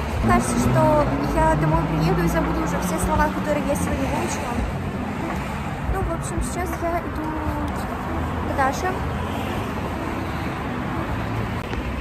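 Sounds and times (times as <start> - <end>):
rumble of cars on road: 0.0 - 12.0.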